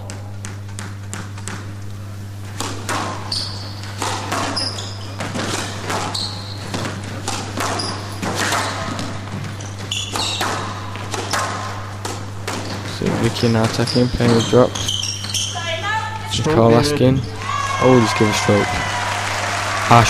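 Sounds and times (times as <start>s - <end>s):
shoes squeaking on court: 0.0s - 17.4s
squash ball thuds: 2.5s - 14.6s.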